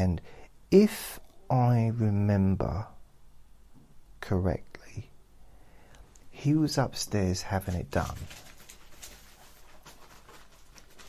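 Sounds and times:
small dog stirring: 0:07.6 - 0:11.0.

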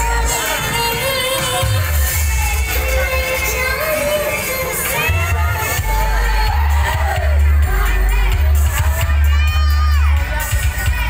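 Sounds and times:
crowd shouting and cheering: 0:00.0 - 0:11.0
loud music with heavy bass: 0:00.0 - 0:11.0.

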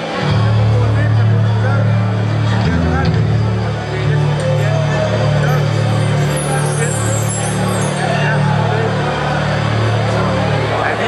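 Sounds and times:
rock band sustained low chord: 0:00.0 - 0:06.5.

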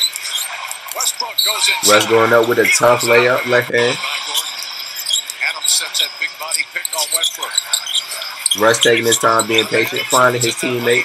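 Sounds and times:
faint tv commentary: 0:00.0 - 0:11.0
sneaker squeaks: 0:04.4 - 0:05.8, 0:06.8 - 0:11.0.

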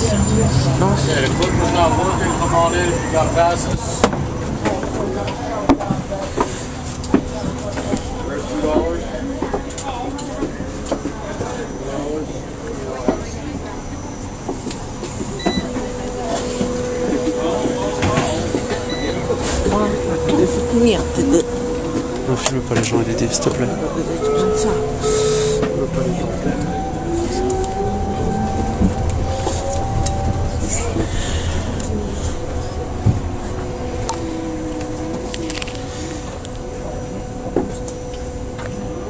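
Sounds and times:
drive whine: 0:00.0 - 0:39.0
transit vehicle running noise: 0:00.0 - 0:39.0
high beep: 0:15.4 - 0:15.8, 0:18.9 - 0:19.4, 0:24.0 - 0:27.6.

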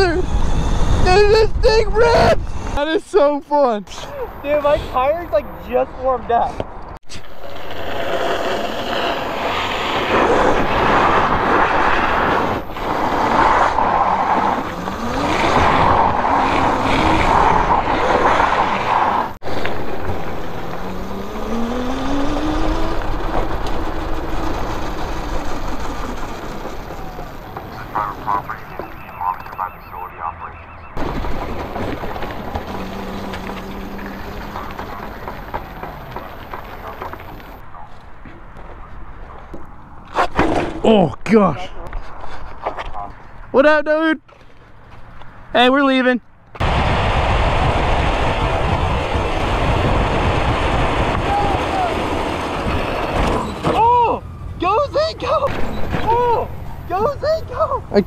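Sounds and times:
wind and tyres rushing: 0:00.0 - 0:58.0.

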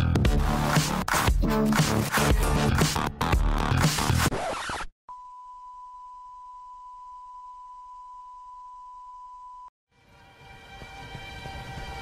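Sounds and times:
sine test tone: 0:05.1 - 0:09.7.

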